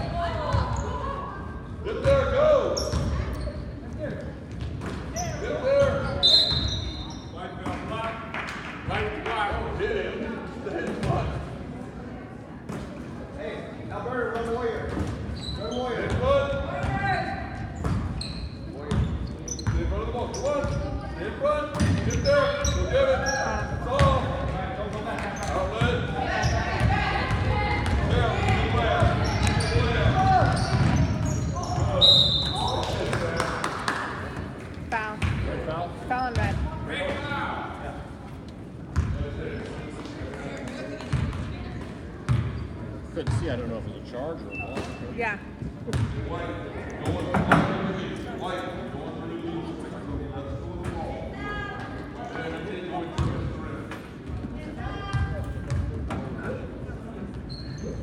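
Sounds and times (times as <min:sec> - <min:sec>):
shouts and chatter: 0:25.8 - 0:33.0
whistle blast: 0:32.0 - 0:32.6.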